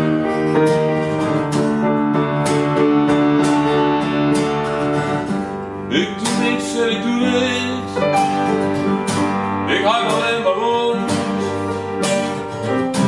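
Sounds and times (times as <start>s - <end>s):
acoustic guitar strumming: 0.0s - 13.0s
sustained keyboard chords: 0.0s - 13.0s.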